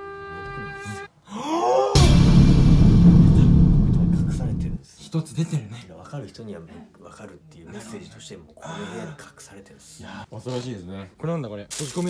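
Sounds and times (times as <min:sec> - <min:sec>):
low rumbling boom: 0:02.0 - 0:04.8
sudden hit: 0:02.0 - 0:04.8.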